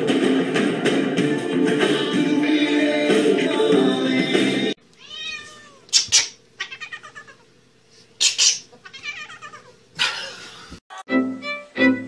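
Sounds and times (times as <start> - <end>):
music: 0.0 - 4.8, 10.9 - 12.0
cat meowing: 5.0 - 7.4, 8.8 - 9.8
cat yowling: 5.0 - 7.4, 8.8 - 9.8.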